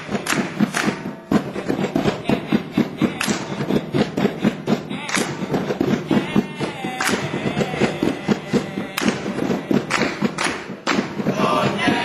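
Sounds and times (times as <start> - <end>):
hands slapping in rhythm: 0.0 - 12.0
sharp hand claps: 0.0 - 12.0.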